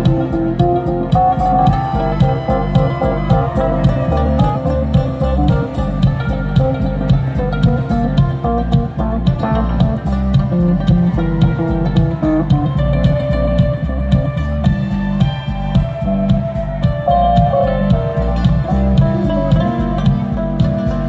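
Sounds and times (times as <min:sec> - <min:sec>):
live band playing: 0:00.0 - 0:21.0
steady drum beat: 0:00.0 - 0:21.0.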